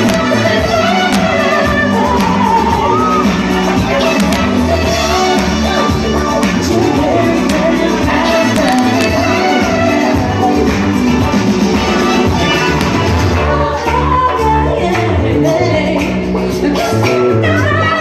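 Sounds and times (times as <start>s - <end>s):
live band playing loud music: 0.0s - 18.0s.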